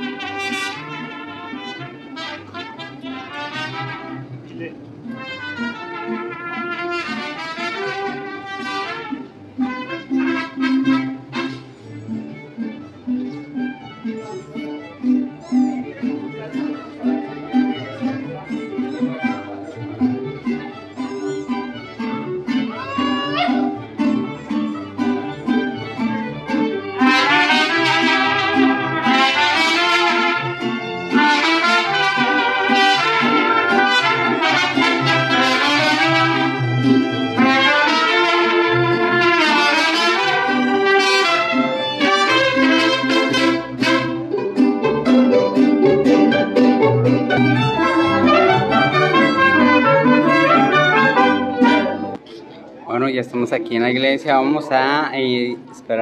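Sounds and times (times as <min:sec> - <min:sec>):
trumpets playing melody: 0:00.0 - 0:04.4, 0:05.1 - 0:11.8, 0:22.7 - 0:23.8, 0:25.8 - 0:52.2
mariachi band playing: 0:00.0 - 0:56.0.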